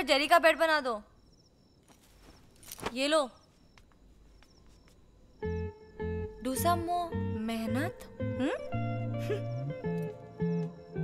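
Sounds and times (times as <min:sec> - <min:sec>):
cricket chirps: 0:00.0 - 0:11.0.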